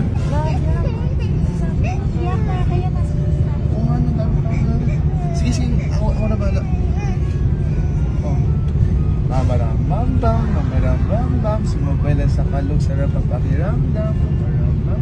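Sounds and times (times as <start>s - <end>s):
airliner cabin drone: 0.0s - 15.0s.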